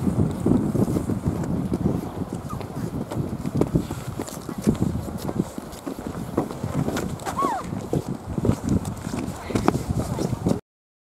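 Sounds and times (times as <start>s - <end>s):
wind buffeting microphone: 0.0s - 10.6s.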